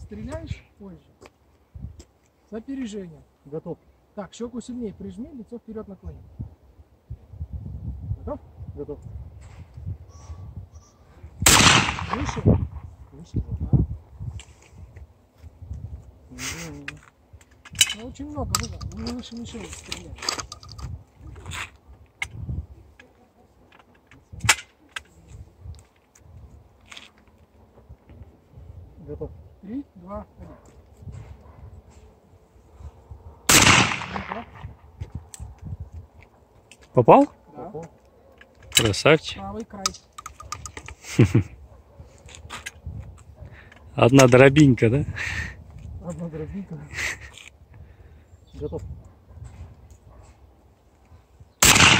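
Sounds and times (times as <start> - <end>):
sharp loud snap: 11.4 - 12.6, 33.5 - 34.7, 51.6 - 51.9
shotgun handling rustling and clicks: 16.8 - 28.3, 35.0 - 39.0, 39.6 - 41.3, 42.2 - 44.6, 47.2 - 47.6
shotgun clicks and clacks: 39.8 - 40.9.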